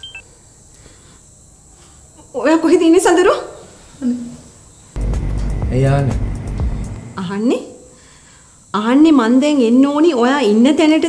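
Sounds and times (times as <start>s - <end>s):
phone key beeps: 0.0s - 0.2s
thin high whine: 0.0s - 10.6s
faint background hum: 0.0s - 11.0s.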